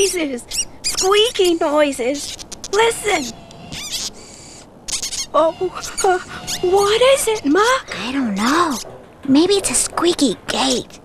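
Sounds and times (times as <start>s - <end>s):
mice squeaking: 0.0s - 11.0s.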